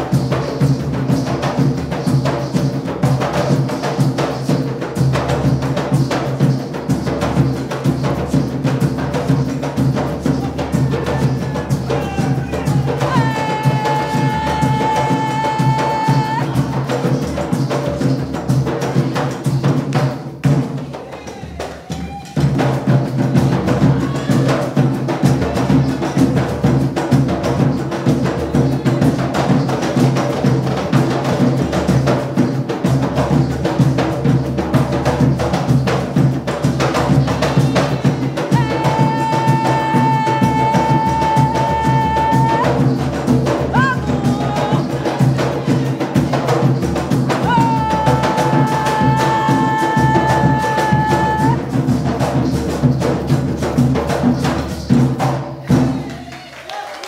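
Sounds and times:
hand drums beating a rhythm: 0.0s - 56.5s.

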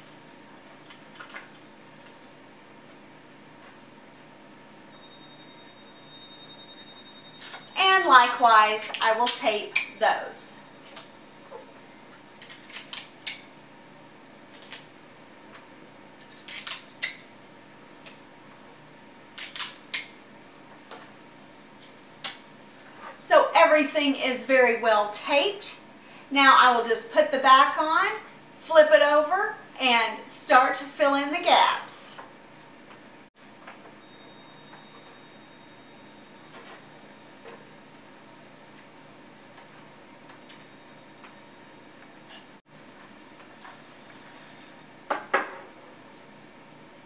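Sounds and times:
low room hiss: 0.0s - 47.0s
adhesive tape pulled and torn: 16.5s - 17.2s, 19.4s - 20.1s.

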